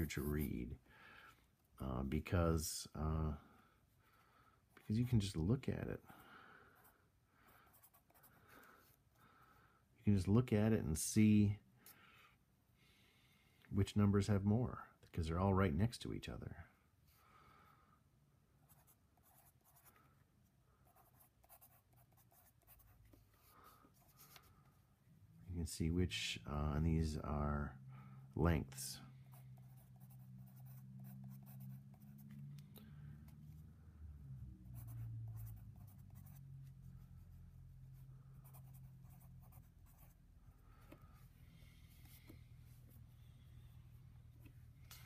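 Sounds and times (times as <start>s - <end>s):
low steady hum: 0.0s - 45.0s
pencil scratching on paper: 18.7s - 20.1s, 20.8s - 24.5s, 29.3s - 32.4s, 34.8s - 40.2s.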